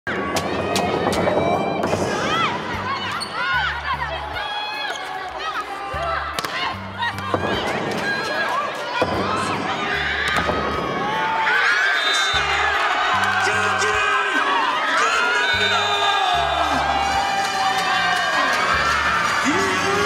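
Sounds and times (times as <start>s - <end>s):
players shrieking and cheering: 0.1s - 20.0s.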